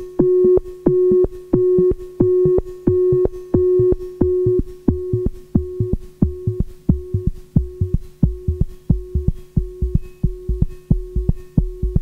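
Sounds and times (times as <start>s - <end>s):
synthesizer held tone: 0.2s - 12.0s
synthesizer pulsing thumps: 0.2s - 12.0s.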